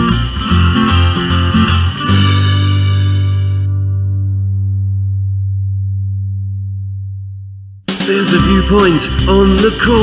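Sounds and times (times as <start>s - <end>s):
low guitar chord ringing: 1.4s - 7.8s.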